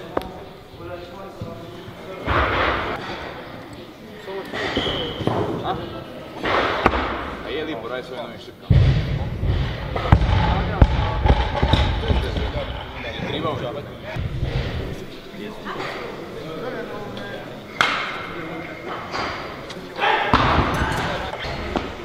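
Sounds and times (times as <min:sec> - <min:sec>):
background chatter: 0:00.0 - 0:22.0
weights thudding on platforms: 0:08.7 - 0:12.8, 0:20.3 - 0:22.0.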